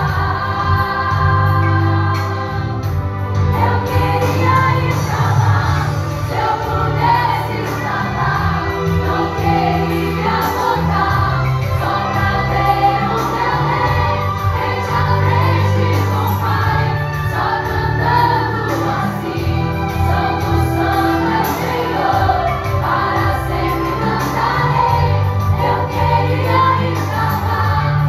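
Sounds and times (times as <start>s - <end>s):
singer through a microphone: 0.0s - 28.0s
women singing worship song: 0.0s - 28.0s.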